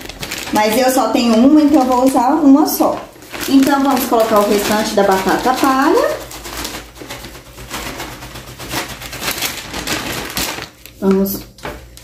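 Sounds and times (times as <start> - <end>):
plastic bag rustling: 0.0 - 12.0
potato sticks crackling: 0.0 - 12.0.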